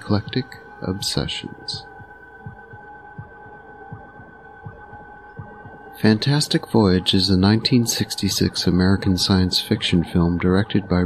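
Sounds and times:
heartbeat thumps: 0.0 - 10.4
droning hum with held tones: 0.0 - 11.0.

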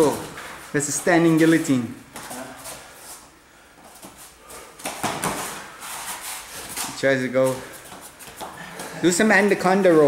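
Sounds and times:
feet scuffing on foam mats: 0.3 - 9.0.

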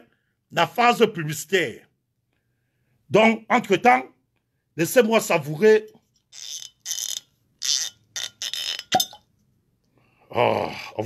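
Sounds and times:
bottle stopper scraping and creaking: 6.0 - 9.3
bottle stopper popping: 6.4 - 9.3.

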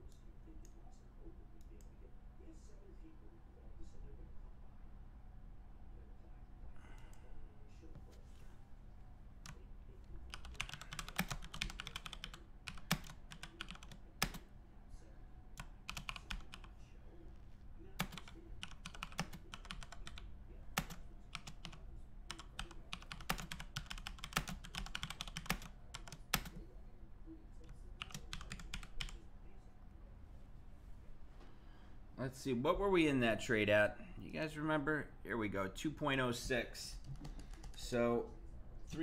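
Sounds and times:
computer keyboard typing: 10.3 - 14.4, 15.6 - 16.7, 18.0 - 26.6, 27.6 - 29.2, 37.0 - 37.8.

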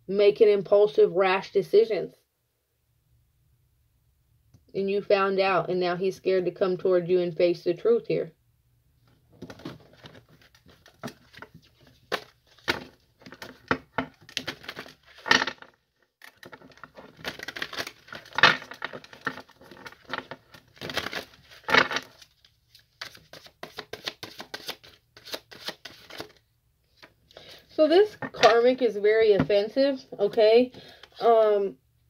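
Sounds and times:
cards rustling and tapping on table: 9.4 - 26.4.

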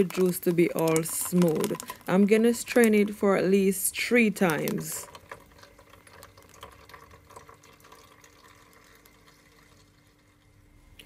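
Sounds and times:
juice trickling through strainer: 0.0 - 10.9.

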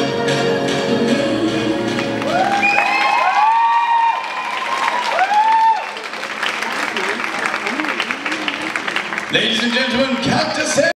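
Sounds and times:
music ending: 0.0 - 3.1
audience clapping: 2.0 - 10.9
audience cheering and whooping: 2.1 - 10.4.

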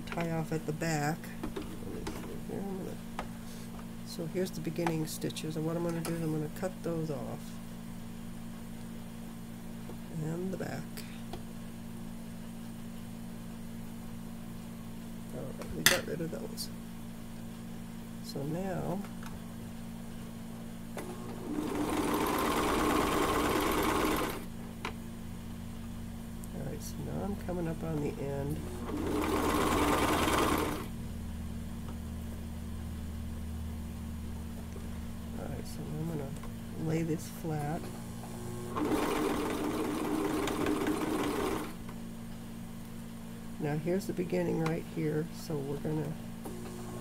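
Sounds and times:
sewing machine running: 21.0 - 24.5, 28.6 - 30.9, 38.5 - 41.8.

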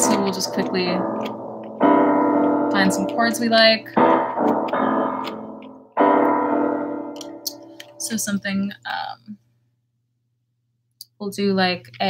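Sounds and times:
piano chords: 0.0 - 8.3.

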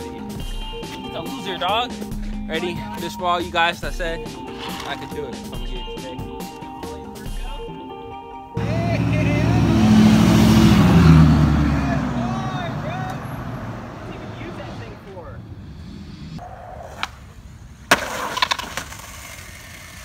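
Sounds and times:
vehicle driving past: 8.6 - 16.4.

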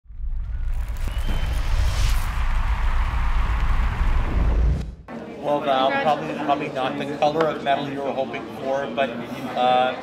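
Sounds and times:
hissing whoosh: 0.9 - 5.0.

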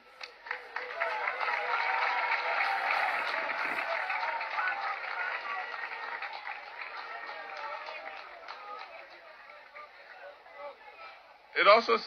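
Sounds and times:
audience applauding: 0.0 - 11.2
people cheering: 0.0 - 12.0.

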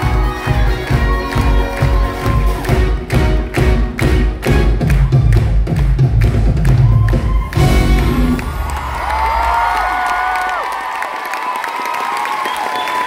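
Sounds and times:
pop-rock band playing: 0.0 - 5.6, 6.9 - 8.5
heavy drum beat: 0.0 - 8.9.

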